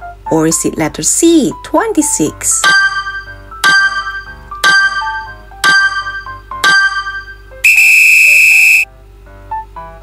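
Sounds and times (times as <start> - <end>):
soft background music: 0.0 - 7.7, 8.9 - 10.0
loud electronic beep: 7.6 - 8.9.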